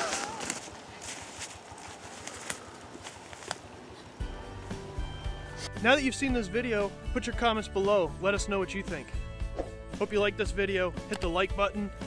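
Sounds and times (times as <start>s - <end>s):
footsteps crunching dry leaves: 0.0s - 4.6s.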